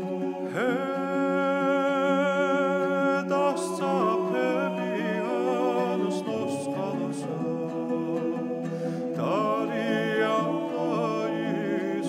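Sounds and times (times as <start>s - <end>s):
low sustained vocal drone: 0.0s - 12.0s.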